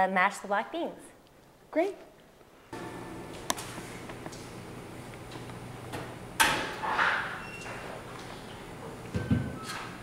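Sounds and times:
oven door slamming shut: 6.4 - 7.8.

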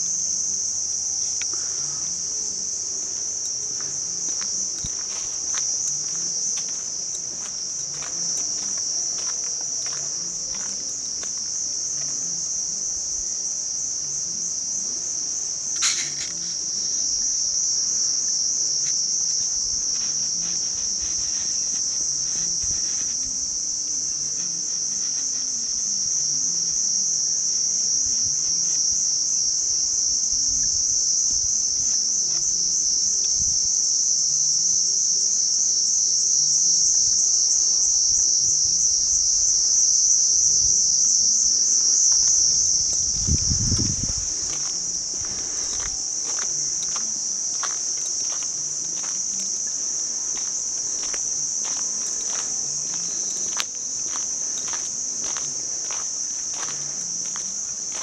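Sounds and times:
insects droning in trees: 0.0 - 58.0.

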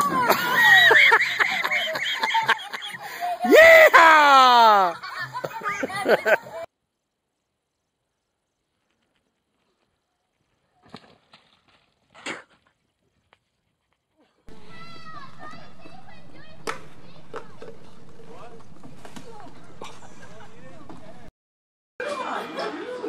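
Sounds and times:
children playing: 0.0 - 6.7, 14.5 - 21.3, 22.0 - 23.0.

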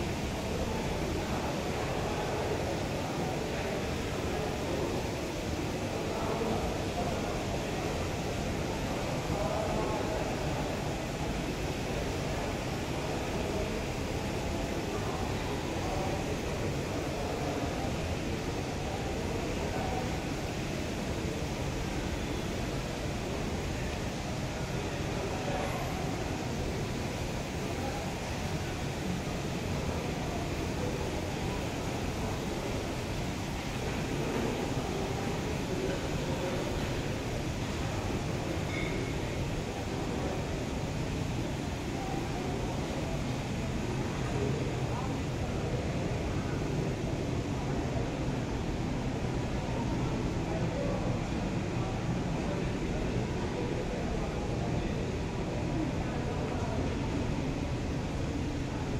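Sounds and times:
air conditioning hum: 0.0 - 58.9
faint indistinct voices: 0.0 - 58.9.

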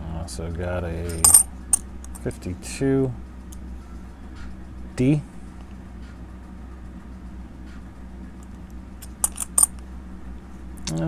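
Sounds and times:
steady low hum: 0.0 - 11.0
coins clinking: 1.0 - 1.8, 9.0 - 9.7.

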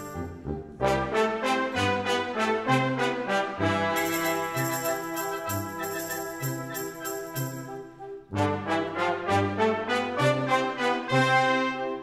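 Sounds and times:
brass accented chords: 0.0 - 12.0
concert band playing a waltz: 0.0 - 12.0.

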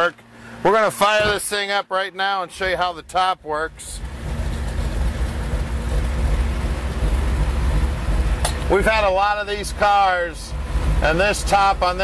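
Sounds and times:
v eight engine idling: 0.0 - 12.0.

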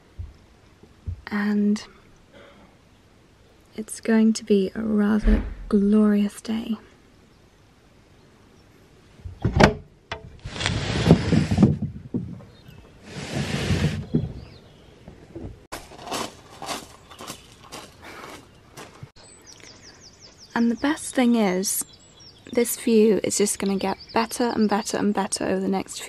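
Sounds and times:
footsteps on gravel: 15.7 - 19.1.

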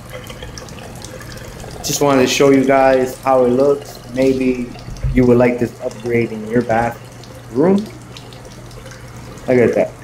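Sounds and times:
faucet water pouring into sink: 0.0 - 10.0.

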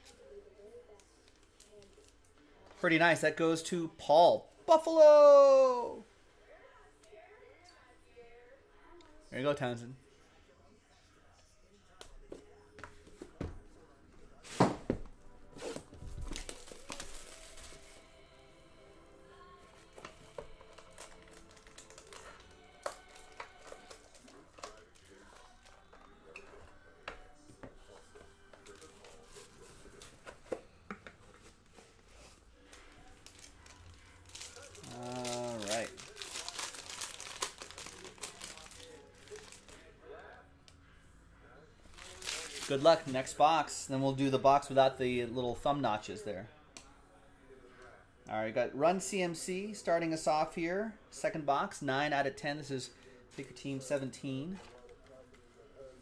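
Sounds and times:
foil crinkling and tearing: 15.7 - 18.0, 20.6 - 25.5, 32.7 - 39.9, 41.9 - 43.1.

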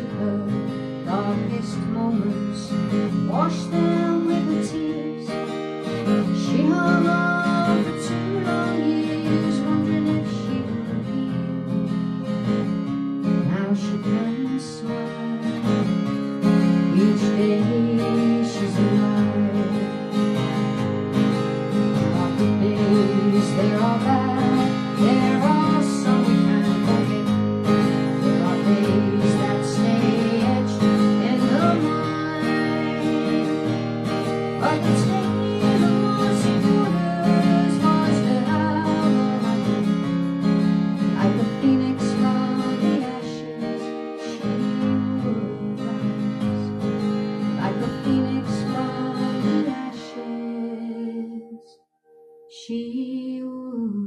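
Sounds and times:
acoustic guitar strumming: 0.0 - 52.6.

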